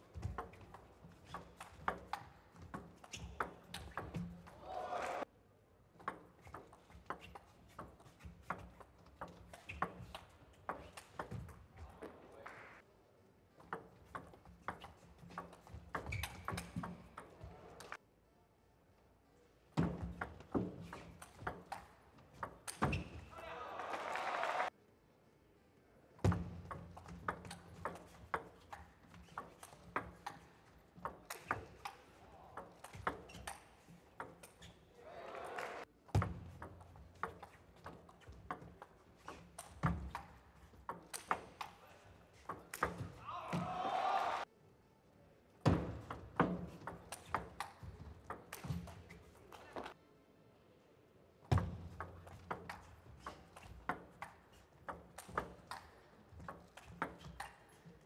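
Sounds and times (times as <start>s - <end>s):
crowd noise: 4.5s - 5.2s, 23.3s - 24.7s, 35.0s - 35.8s, 43.2s - 44.4s.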